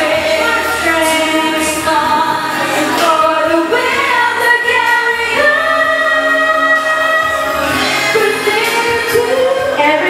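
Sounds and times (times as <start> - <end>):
female voices singing: 0.0 - 10.0.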